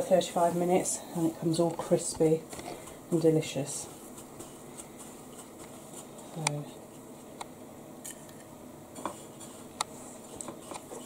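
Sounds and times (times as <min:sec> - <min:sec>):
breadcrumbs rustling: 0:00.0 - 0:07.4.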